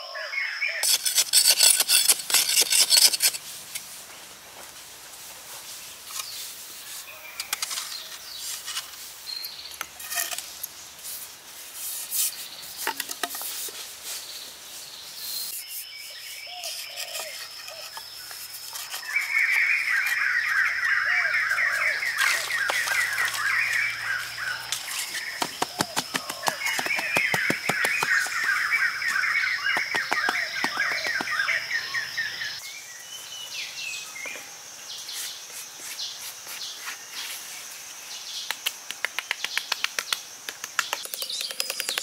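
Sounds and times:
birds chirping: 14.2 - 37.2.

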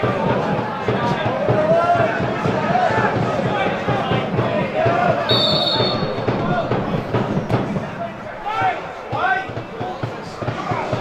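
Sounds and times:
people shouting: 0.0 - 11.0
referee's whistle blast: 5.3 - 6.5.

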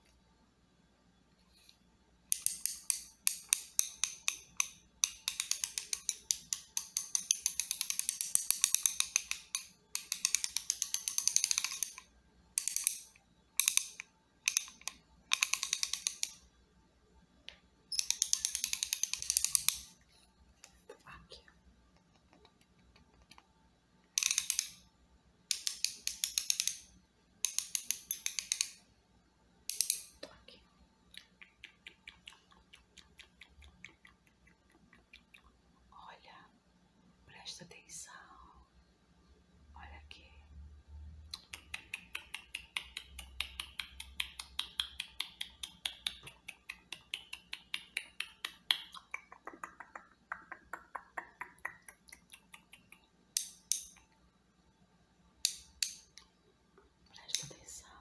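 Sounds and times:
ratchet wrench clicking: 2.3 - 12.0, 18.0 - 19.9, 24.2 - 24.8, 25.5 - 26.8, 27.4 - 28.8.

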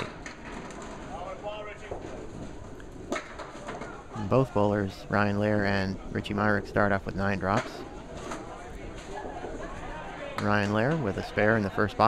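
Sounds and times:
indistinct background voices: 3.5 - 12.0.

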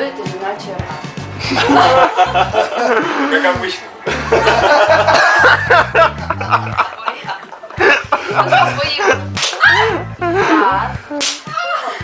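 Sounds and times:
bar music with bass line: 0.0 - 11.6
voices and laughter: 1.3 - 12.0
sharp slaps: 9.3 - 9.8, 11.2 - 11.6.

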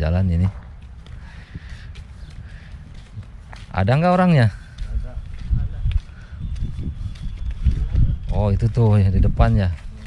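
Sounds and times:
footsteps on pavement: 0.0 - 10.0
wind rumble on microphone: 0.4 - 3.9, 4.6 - 10.0.

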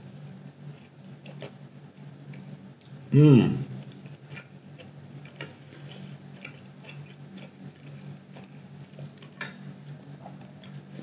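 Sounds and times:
steady low hum: 0.0 - 11.0
person chewing food: 0.7 - 1.6, 3.7 - 11.0.

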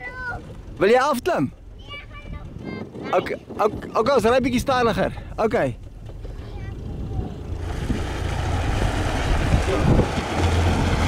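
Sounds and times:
vehicle engine hum: 0.0 - 2.8, 4.2 - 11.0
road noise rushing: 4.2 - 11.0.

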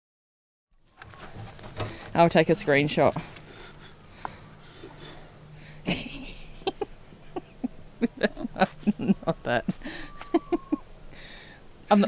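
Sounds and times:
person laughing: 5.8 - 10.9.

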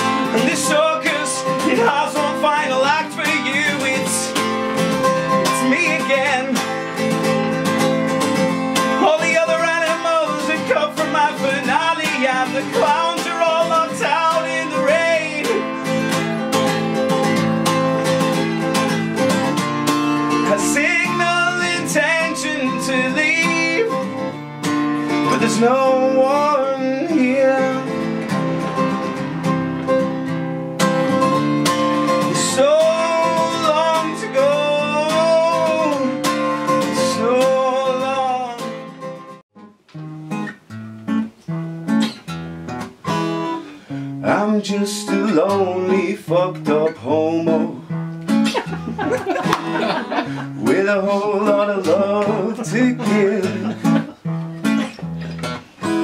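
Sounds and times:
man singing: 0.0 - 24.4, 25.0 - 28.3, 32.0 - 39.3, 44.1 - 48.0, 49.1 - 55.0
acoustic guitar strumming: 0.0 - 56.0.

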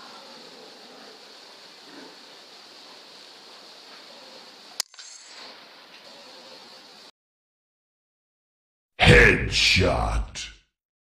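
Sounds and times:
faint steady hiss: 0.0 - 7.1.

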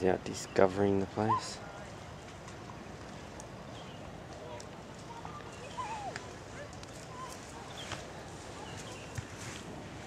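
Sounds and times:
beach ambience wash: 0.0 - 10.0.

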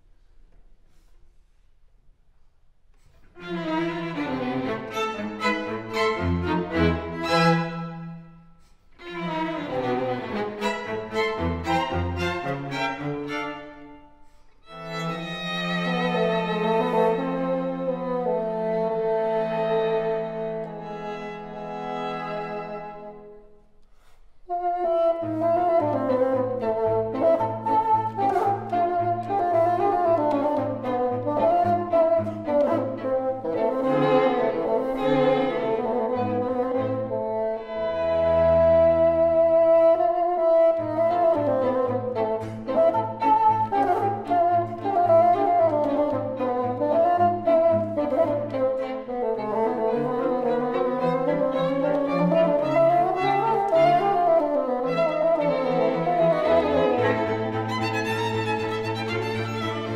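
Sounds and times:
string quartet: 3.0 - 59.9
bassoon: 14.7 - 23.4, 24.5 - 59.9.

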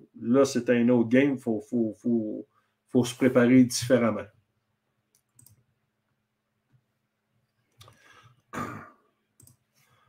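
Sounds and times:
computer mouse clicks: 5.1 - 5.7, 9.4 - 9.7
man clearing throat: 8.5 - 9.0.

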